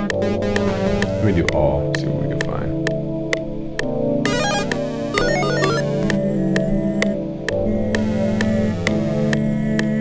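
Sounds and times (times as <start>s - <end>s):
looping synth melody: 0.1s - 1.6s, 4.2s - 6.4s, 8.0s - 9.4s
steady ticking: 0.1s - 3.4s, 4.3s - 6.7s
fast arpeggiated synth: 0.2s - 1.5s, 4.3s - 6.2s.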